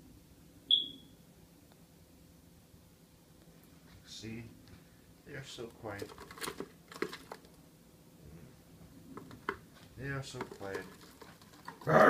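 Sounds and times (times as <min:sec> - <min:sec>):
faint clicks and rustling: 0:05.6 - 0:07.6, 0:09.1 - 0:12.0.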